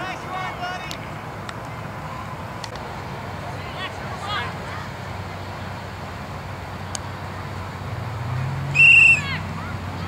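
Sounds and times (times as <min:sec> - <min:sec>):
referee's whistle blast: 0:08.8 - 0:09.3.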